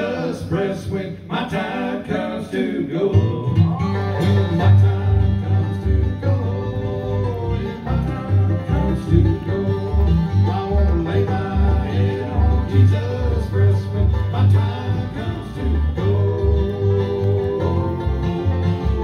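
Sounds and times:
bluegrass band playing: 0:00.0 - 0:19.0
upright bass: 0:03.0 - 0:19.0.

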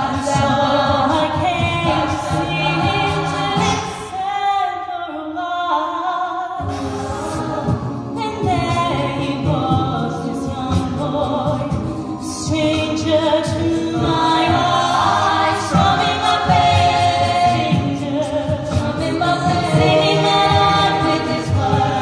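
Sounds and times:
a cappella group singing: 0:00.0 - 0:22.0.

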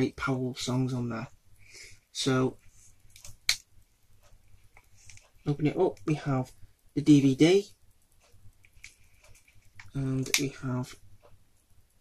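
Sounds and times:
sharp click: 0:03.1 - 0:03.7.

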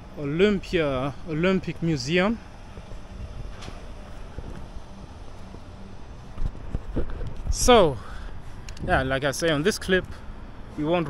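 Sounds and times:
faint outdoor ambience: 0:00.0 - 0:11.0
wind buffeting microphone: 0:00.6 - 0:11.0.

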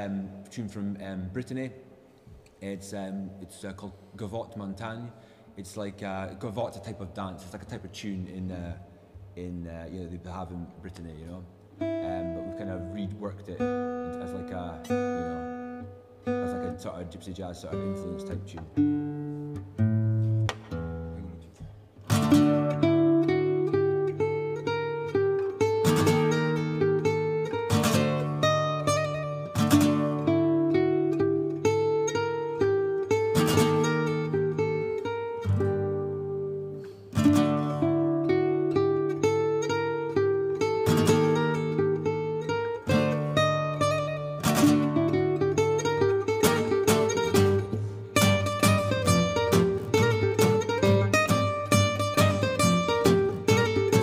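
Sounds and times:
acoustic guitars playing gypsy jazz: 0:11.4 - 0:54.0.

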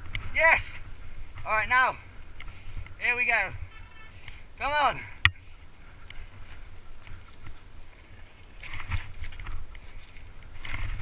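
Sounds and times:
bike tyre rumble: 0:00.0 - 0:03.0, 0:03.6 - 0:11.0
bike clattering and rattling: 0:05.3 - 0:11.0.

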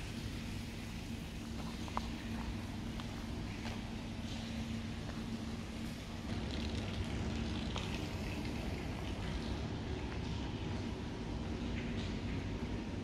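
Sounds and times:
faint hum: 0:00.0 - 0:13.0
low city rumble: 0:00.0 - 0:13.0
footsteps on rubble: 0:01.5 - 0:05.3.

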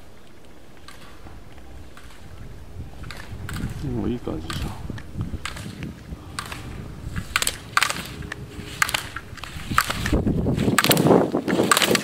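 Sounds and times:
gate poles clacking: 0:00.0 - 0:12.0
skis scraping on hard snow: 0:00.0 - 0:12.0.

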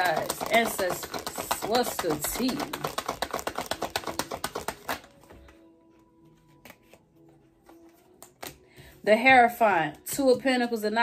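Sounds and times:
cards tapping: 0:00.0 - 0:05.5, 0:06.6 - 0:07.0, 0:07.6 - 0:08.6
cards being shuffled: 0:00.0 - 0:05.6, 0:06.4 - 0:08.6.

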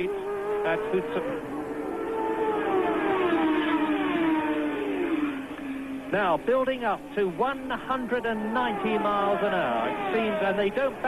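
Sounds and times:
racing car engine at high revs: 0:00.0 - 0:11.0.

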